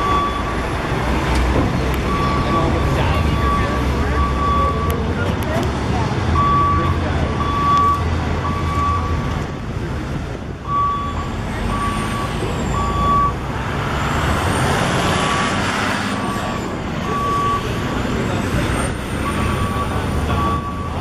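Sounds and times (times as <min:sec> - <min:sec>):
truck reversing alarm beeps: 0:00.0 - 0:01.0, 0:01.8 - 0:05.3, 0:06.3 - 0:09.4, 0:10.6 - 0:13.5, 0:14.6 - 0:21.0
street traffic: 0:00.0 - 0:21.0
vehicle passing close by: 0:11.4 - 0:20.5.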